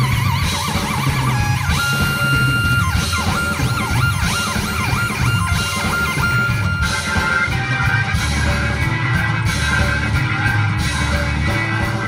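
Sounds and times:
drums: 0:00.0 - 0:12.0
electric bass: 0:00.0 - 0:12.0
warbling synthesizer lead: 0:00.0 - 0:12.0.

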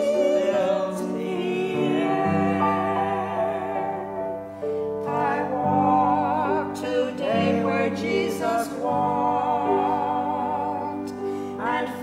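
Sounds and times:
man singing with vibrato: 0:00.0 - 0:04.1, 0:05.1 - 0:12.0
woman singing with vibrato: 0:00.0 - 0:04.3, 0:05.0 - 0:12.0
grand piano accompaniment: 0:00.0 - 0:12.0.

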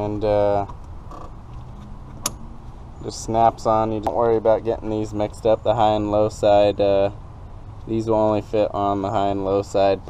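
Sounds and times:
hose coupler snapping on: 0:02.1 - 0:02.4.

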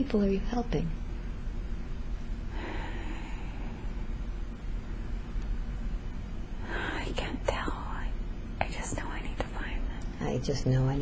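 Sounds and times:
low steady hum: 0:00.0 - 0:11.0
woman whispering: 0:06.6 - 0:10.2.

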